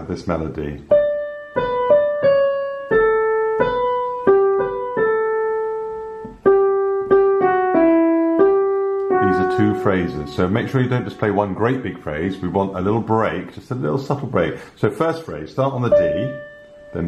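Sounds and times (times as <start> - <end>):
digital piano slow melody: 0.8 - 13.4, 15.8 - 17.0.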